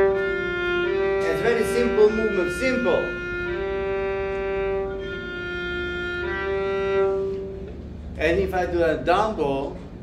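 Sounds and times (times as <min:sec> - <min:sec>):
violin long held note: 0:00.0 - 0:07.9.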